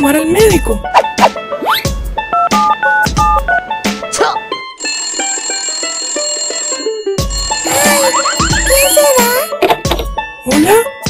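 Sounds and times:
toy telephone ringing tune: 4.8 - 9.5.

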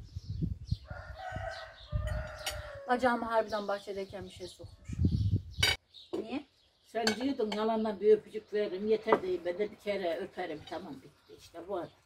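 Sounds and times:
rooster crowing: 0.9 - 3.0.

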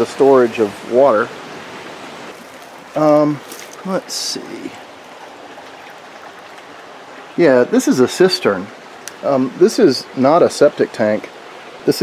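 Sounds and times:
creek water rushing: 0.0 - 12.0.

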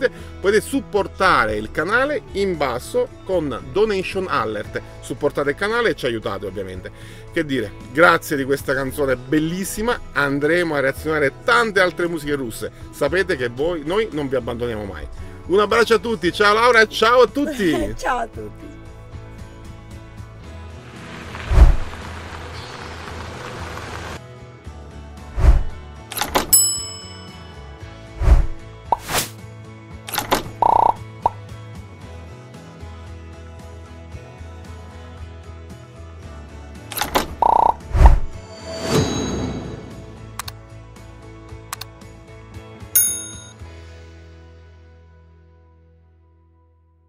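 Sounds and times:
soft background music: 0.0 - 46.0
whoosh: 21.1 - 22.0, 25.4 - 25.8, 28.2 - 29.4, 37.8 - 40.4
bright bell ding: 26.5 - 27.8, 38.7 - 40.3, 43.0 - 43.7.

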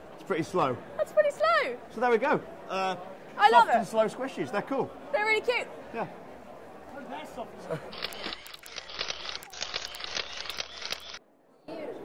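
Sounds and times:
dense static crackling: 8.0 - 11.2.

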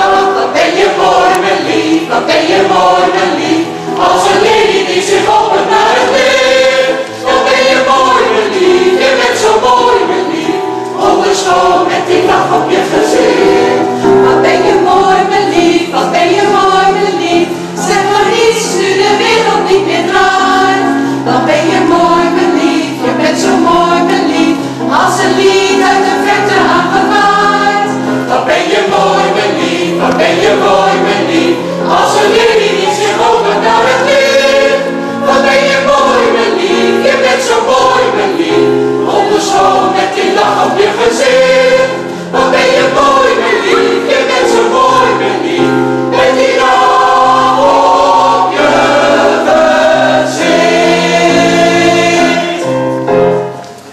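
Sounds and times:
mixed choir singing in harmony: 0.0 - 53.9.

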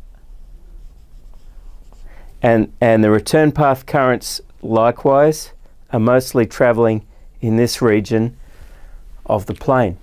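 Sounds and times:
low room hum: 0.0 - 10.0
marker scratching on whiteboard: 0.4 - 2.3.

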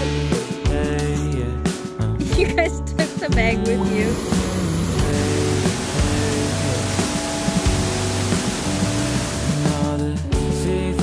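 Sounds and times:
background music: 0.0 - 11.0
waterfall rushing: 4.0 - 9.9.

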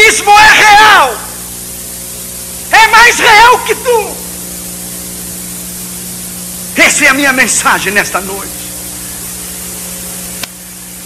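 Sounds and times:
low steady hum: 0.0 - 11.0
steady hiss: 0.0 - 11.0.

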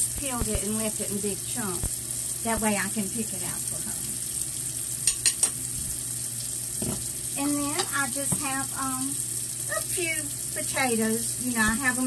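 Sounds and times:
meat sizzling in a pot: 0.0 - 12.0
soft knock: 6.8 - 7.0.

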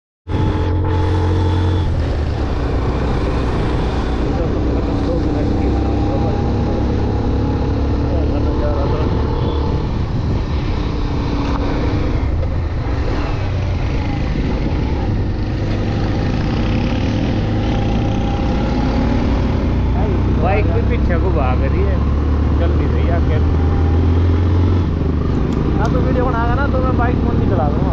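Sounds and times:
wind rumble on microphone: 0.3 - 21.6.

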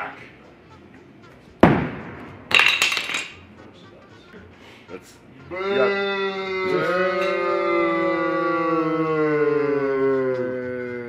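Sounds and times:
metal clinking impact: 2.5 - 3.5.

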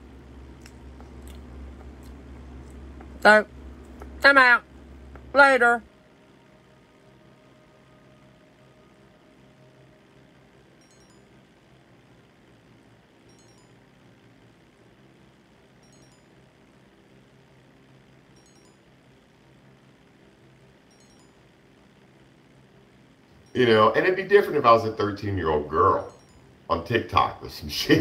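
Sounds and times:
faint background hum: 0.0 - 28.0.

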